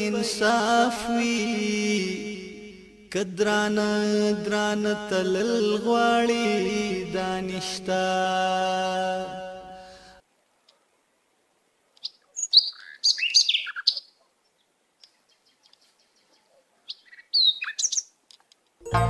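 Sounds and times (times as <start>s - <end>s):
small birds chirping: 11.9s - 18.5s.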